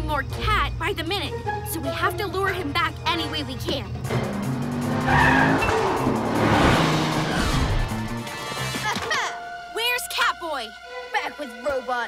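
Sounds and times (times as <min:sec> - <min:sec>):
background music: 0:00.0 - 0:12.0
cartoon car speeding past: 0:04.1 - 0:08.6.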